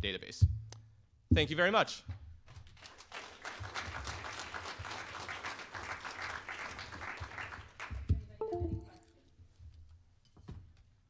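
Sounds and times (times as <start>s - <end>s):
audience applauding: 2.8s - 8.0s.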